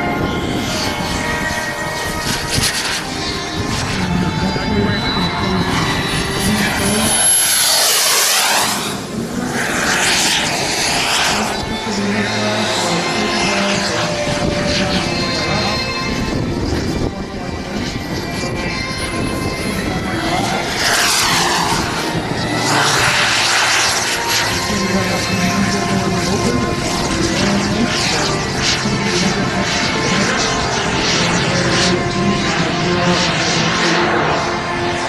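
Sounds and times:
model jet turbine engine: 0.0s - 35.0s
music playing: 0.0s - 35.0s.

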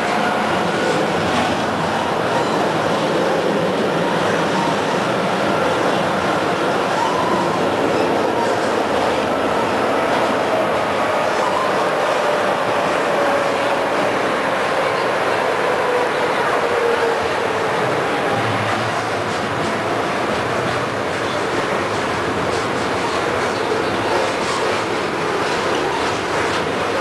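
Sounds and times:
tram wheels rumbling on rails: 0.0s - 27.0s.

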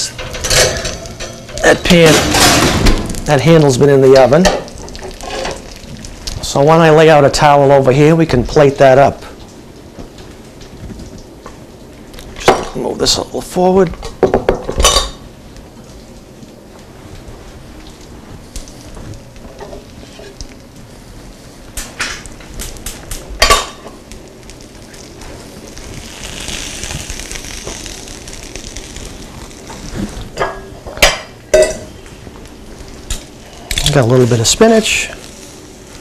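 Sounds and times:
soft sizzle from hot pan: 0.0s - 36.0s.

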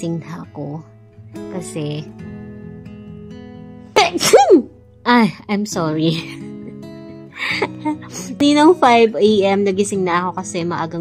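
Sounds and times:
acoustic guitar music: 0.0s - 11.0s
woman sneezing: 4.0s - 4.7s.

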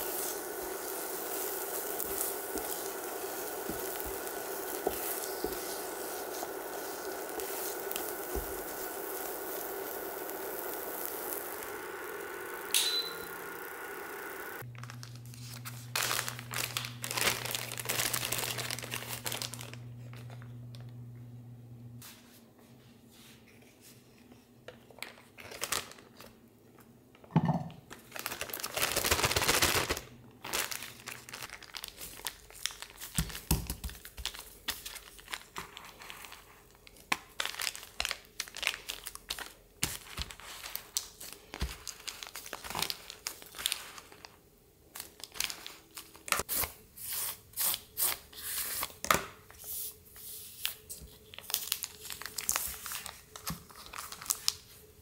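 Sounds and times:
plastic scraper crackling on bag: 0.0s - 13.4s
plastic bag crinkling: 0.0s - 21.0s, 25.0s - 26.4s, 27.9s - 46.5s, 50.7s - 54.9s.

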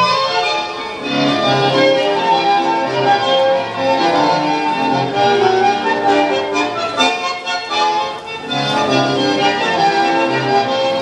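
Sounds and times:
bandoneon notes: 0.0s - 11.0s
tango music over loudspeaker: 0.0s - 11.0s.

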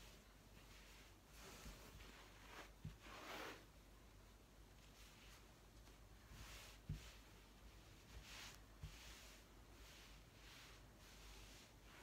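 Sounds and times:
fabric rustling: 0.0s - 12.0s.

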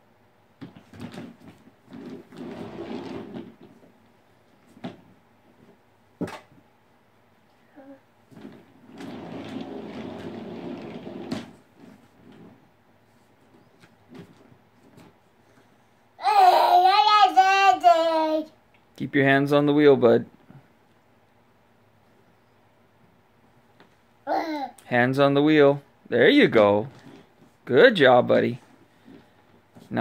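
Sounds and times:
toy base whirring on carpet: 8.3s - 12.5s.

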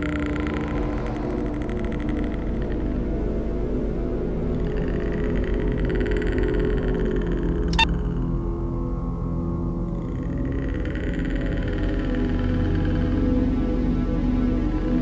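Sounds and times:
dark ambient drone music: 0.0s - 15.0s.

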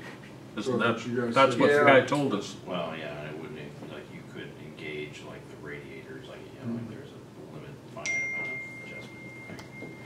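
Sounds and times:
high ding: 8.0s - 10.0s.

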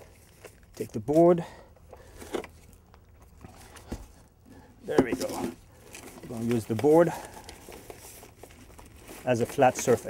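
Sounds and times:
plastic bag crinkling: 5.6s - 10.0s.

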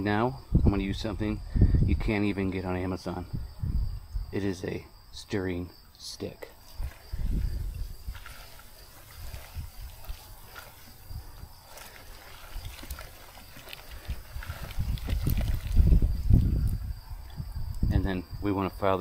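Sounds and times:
stick stirring manure in water: 6.5s - 17.4s
low rumbling: 6.7s - 18.5s.

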